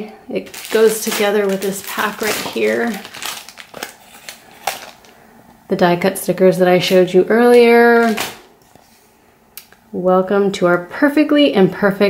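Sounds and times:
sticker sheets rustling: 0.5s - 5.2s, 6.8s - 8.9s.

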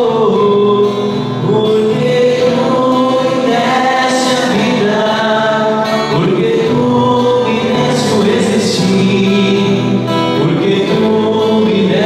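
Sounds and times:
choir singing a hymn: 1.4s - 12.0s.

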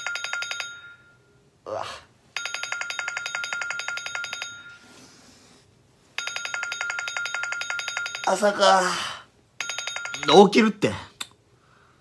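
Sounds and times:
electronic alarm beeping: 9.6s - 10.4s.

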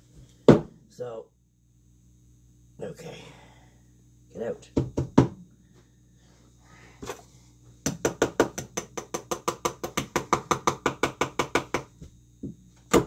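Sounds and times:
rapid sharp knocks on mold: 7.8s - 11.9s.

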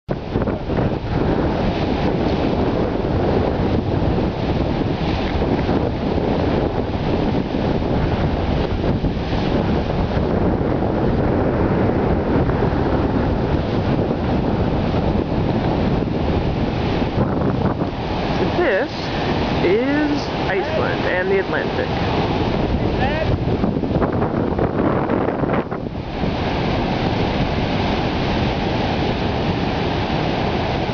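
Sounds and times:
heavy ocean surf breaking: 0.1s - 30.9s
wind buffeting microphone: 0.1s - 30.9s.

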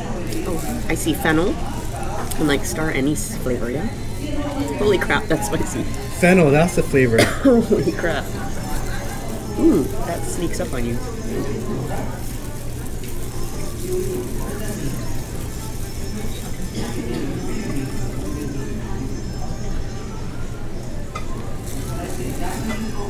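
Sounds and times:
indistinct voices: 0.0s - 23.0s.

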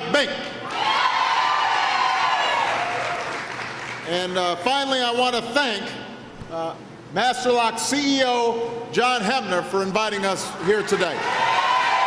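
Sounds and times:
crowd cheering: 0.6s - 3.9s, 10.6s - 12.0s
long held whoop: 0.7s - 3.2s.

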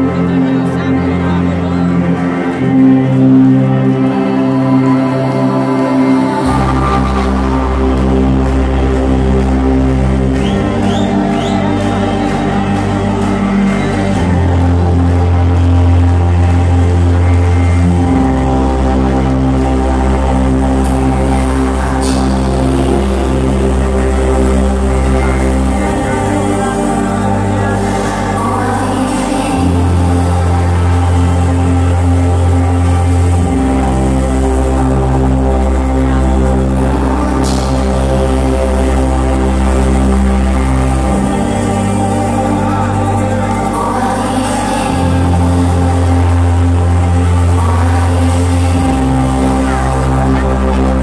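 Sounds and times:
house music over sound system: 0.0s - 51.0s.

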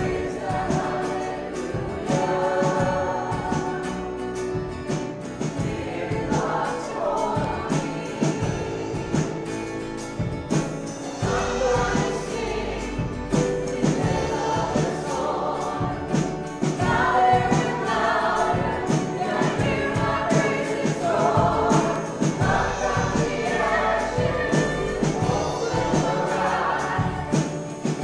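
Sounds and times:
acoustic and electric guitars: 0.0s - 28.0s
drum kit beat: 0.0s - 28.0s
people singing: 0.0s - 28.0s.

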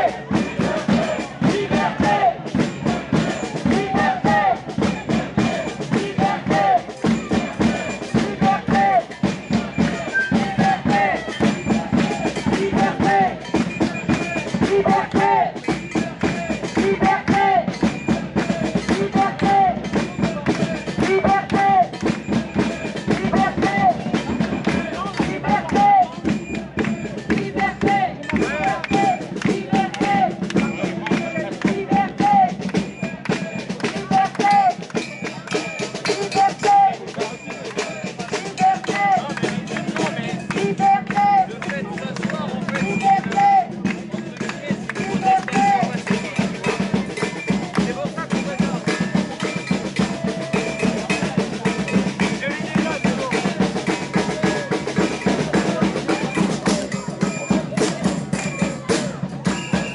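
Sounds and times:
hand drums playing fast rhythm: 0.0s - 59.9s
murmur of crowd voices: 0.0s - 59.9s.

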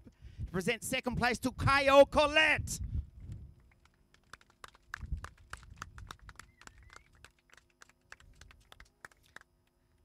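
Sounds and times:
small crowd clapping: 3.6s - 9.6s.

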